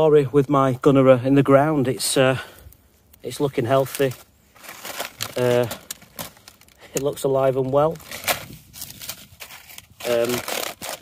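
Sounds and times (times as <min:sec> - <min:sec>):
dry leaves and straw crackling: 0:03.2 - 0:11.0.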